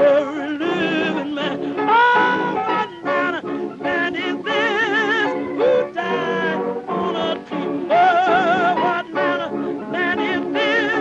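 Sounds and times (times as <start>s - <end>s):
sustained musical backing: 0.0s - 11.0s
woman singing gospel: 0.0s - 11.0s.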